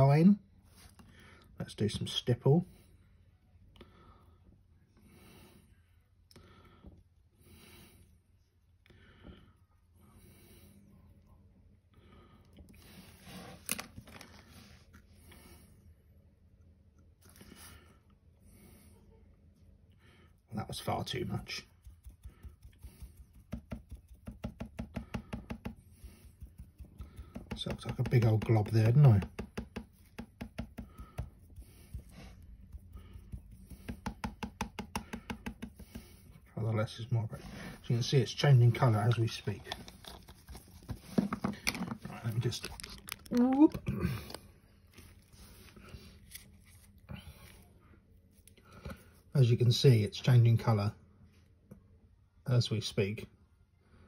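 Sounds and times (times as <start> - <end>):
faint breathing: 2.6 - 8.2
sponge tapping on metal plate: 23.5 - 25.8, 26.8 - 31.3, 33.7 - 36.0.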